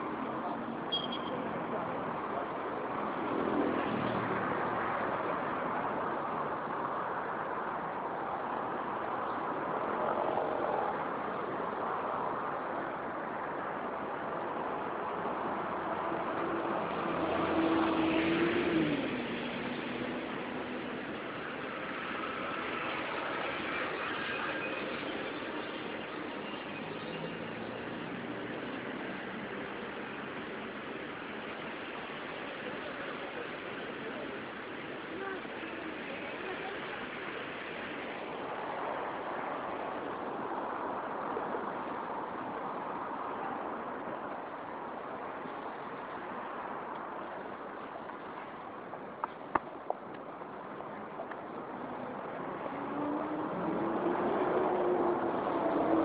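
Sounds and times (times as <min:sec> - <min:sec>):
passing cars road noise: 0:00.0 - 0:56.0.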